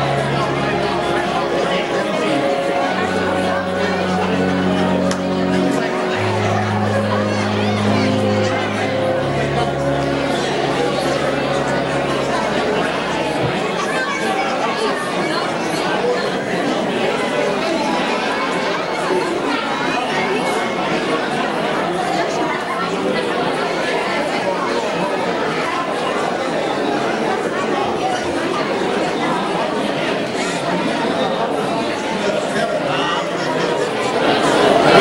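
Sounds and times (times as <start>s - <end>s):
crowd chatter: 0.0s - 35.0s.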